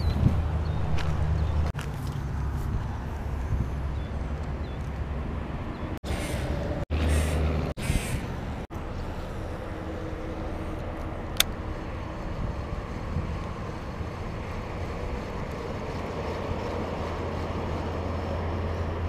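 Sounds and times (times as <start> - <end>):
distant highway traffic hum: 0.0 - 19.0.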